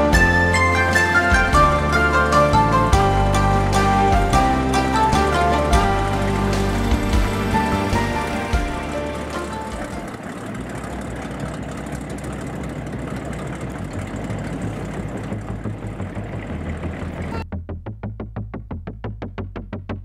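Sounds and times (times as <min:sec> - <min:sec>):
background music: 0:00.0 - 0:10.5
low engine rumbling: 0:00.0 - 0:20.0.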